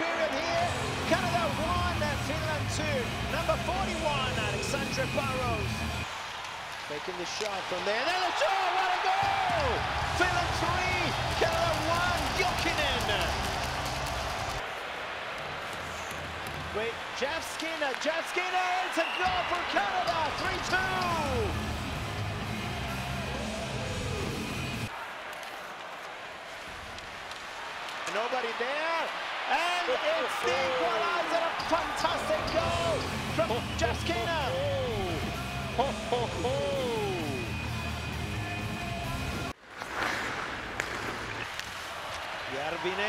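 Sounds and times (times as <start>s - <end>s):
commentator speaking: 0.0s - 5.7s, 28.1s - 35.2s
crowd noise: 0.0s - 39.6s
music over public address: 0.6s - 6.1s, 20.2s - 24.9s, 32.1s - 39.5s.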